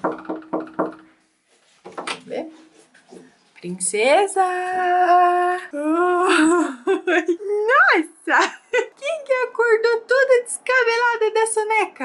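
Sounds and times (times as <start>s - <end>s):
knocking on a door: 0.0s - 1.1s, 1.9s - 2.2s.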